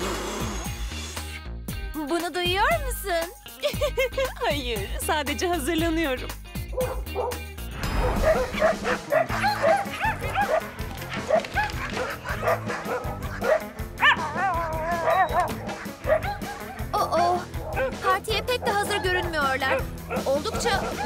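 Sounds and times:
cheerful background music: 0.4 - 21.0
cartoon puppies yipping and barking: 8.0 - 21.0.

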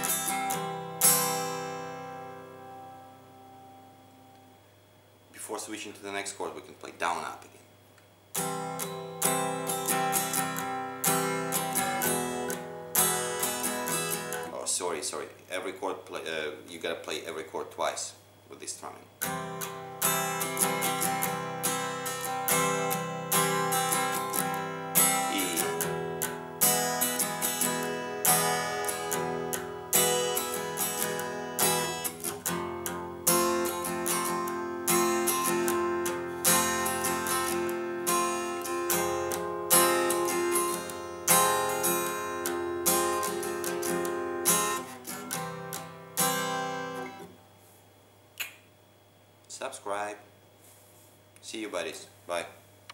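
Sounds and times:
acoustic guitar strumming: 0.0 - 4.4, 8.3 - 18.0, 19.2 - 47.4.

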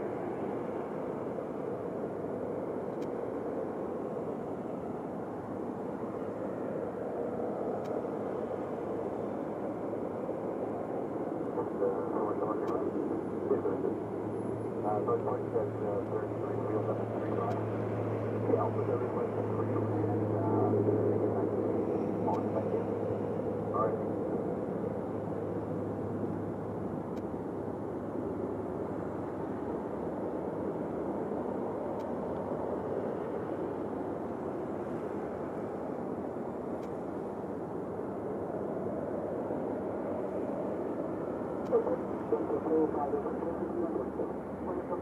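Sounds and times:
jet engines rumbling: 0.0 - 45.0
faint voices: 11.4 - 17.8, 18.4 - 23.1, 41.6 - 45.0.

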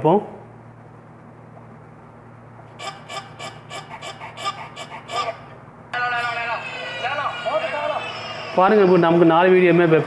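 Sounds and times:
short repeated calls from phone: 2.8 - 7.6.

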